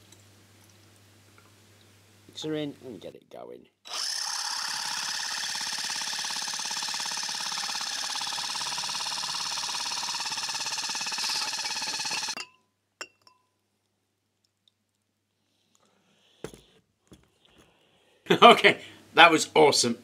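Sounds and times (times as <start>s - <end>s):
cordless drill running: 3.9s - 12.4s.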